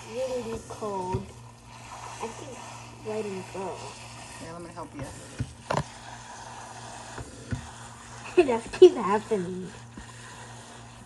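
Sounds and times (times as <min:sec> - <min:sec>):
faucet sprayer hissing water: 0:00.0 - 0:11.0
hand stirring frozen vegetables: 0:00.0 - 0:11.0.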